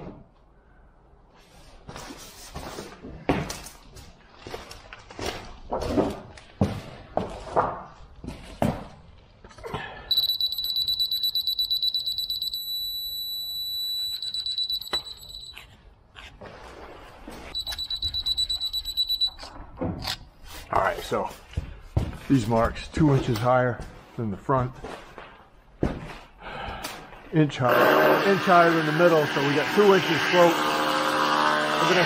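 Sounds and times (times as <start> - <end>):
rapid high-pitched beeps: 10.1 - 15.6, 17.6 - 19.4
steady beep tone: 10.1 - 15.6, 17.6 - 19.5.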